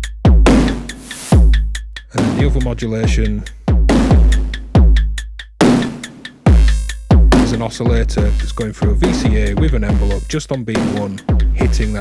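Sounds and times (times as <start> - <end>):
deep kick drums with falling pitch: 0.0 - 5.8, 6.5 - 12.0.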